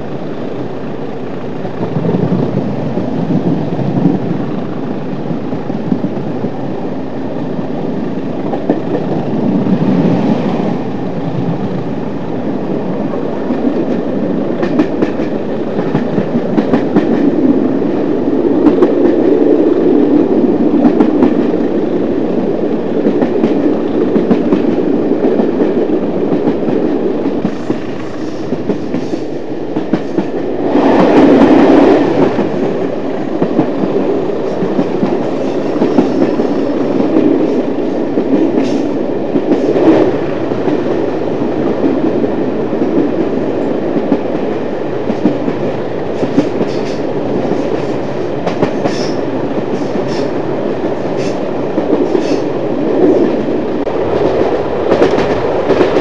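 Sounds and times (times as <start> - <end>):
train rumble: 0.0 - 56.0
wheels clicking over rail joints: 13.0 - 56.0.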